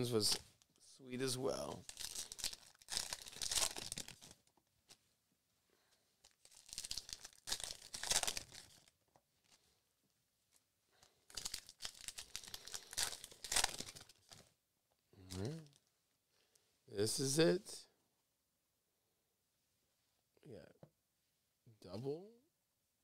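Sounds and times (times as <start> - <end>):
card pack wrappers tearing and crinkling: 1.8 - 4.4, 6.3 - 8.9, 11.3 - 14.4.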